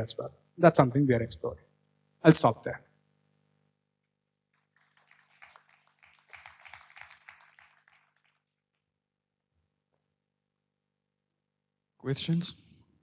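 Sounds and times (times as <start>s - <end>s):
faint audience applause: 4.5s - 8.9s.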